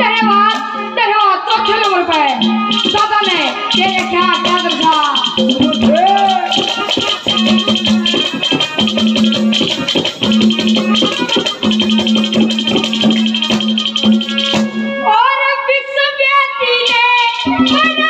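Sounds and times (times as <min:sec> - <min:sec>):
folk music with fast percussion: 0:00.0 - 0:18.0
person singing: 0:02.7 - 0:13.0.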